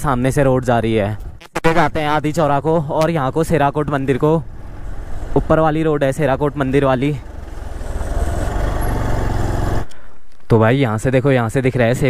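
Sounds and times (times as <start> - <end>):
motorcycle engine running: 4.1 - 9.9.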